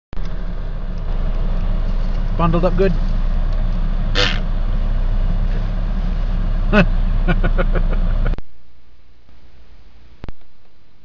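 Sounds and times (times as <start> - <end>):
engine and tyre rumble: 0.1 - 11.0
road hiss: 0.3 - 8.4.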